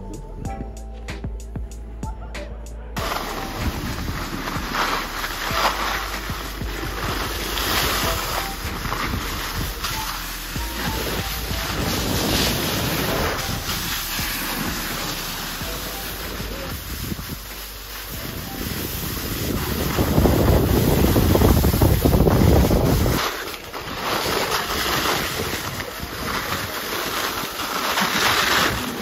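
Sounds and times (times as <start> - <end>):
music: 0.0 - 29.0
skis scraping over snow: 3.0 - 29.0
wind buffeting microphone: 16.7 - 17.5, 18.1 - 23.2.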